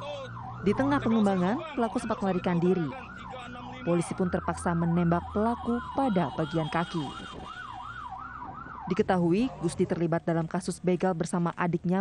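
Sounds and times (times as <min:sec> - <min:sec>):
electronic siren wailing: 0:00.0 - 0:09.9.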